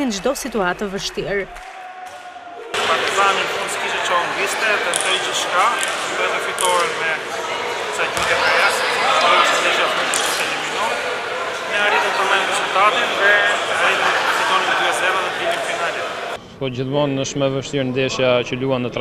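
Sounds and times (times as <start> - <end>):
sports hall noise: 0.0 - 19.0
man speaking: 2.8 - 19.0
basketballs bouncing on court: 8.2 - 8.6.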